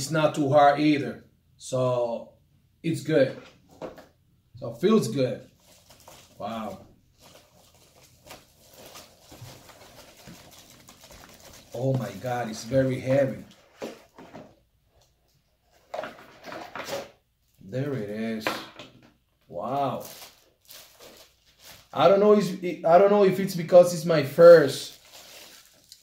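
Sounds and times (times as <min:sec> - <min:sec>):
plastic bag crinkling: 0:05.5 - 0:14.2, 0:19.8 - 0:22.1, 0:24.7 - 0:26.0.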